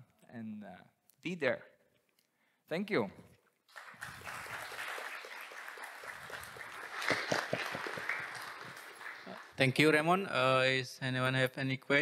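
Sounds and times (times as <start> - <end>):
audience applauding: 3.7 - 10.0.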